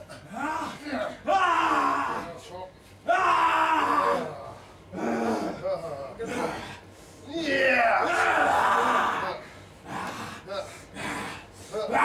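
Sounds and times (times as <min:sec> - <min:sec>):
man straining and crying out: 0:00.1 - 0:02.4, 0:03.1 - 0:06.7, 0:07.3 - 0:10.1, 0:11.8 - 0:12.0.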